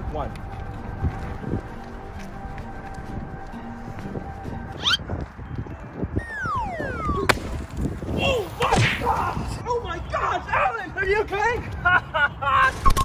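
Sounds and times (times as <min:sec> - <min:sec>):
background music: 0:00.0 - 0:09.8
short rising squeak: 0:04.8 - 0:05.0
long falling whistle: 0:06.2 - 0:07.3
sharp hit: 0:06.2 - 0:09.1.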